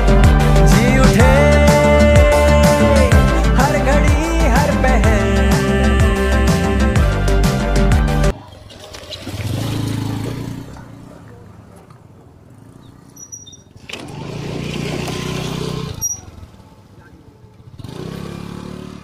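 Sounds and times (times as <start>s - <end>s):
scooter passing by: 8.3s - 19.0s
motorcycle passing by: 9.0s - 19.0s.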